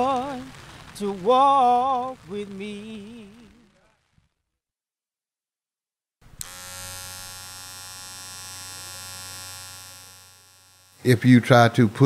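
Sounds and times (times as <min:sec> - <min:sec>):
electric hair clippers buzzing: 0:06.2 - 0:11.4.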